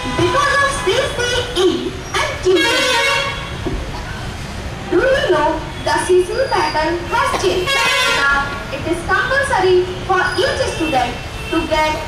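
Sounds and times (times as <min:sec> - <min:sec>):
vehicle horn: 0:02.6 - 0:03.6, 0:07.6 - 0:08.4.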